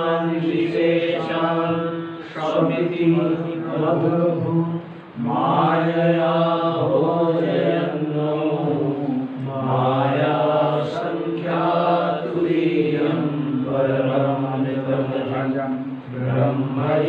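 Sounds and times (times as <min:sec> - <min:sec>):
man chanting verses: 0:00.0 - 0:17.0.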